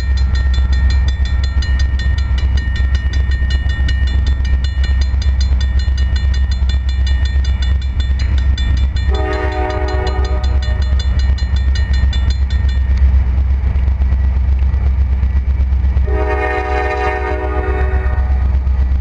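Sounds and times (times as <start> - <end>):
crossing bell ringing: 0.0 - 13.3
freight train rumble: 0.0 - 19.0
locomotive air horn: 9.1 - 10.7, 16.0 - 18.6.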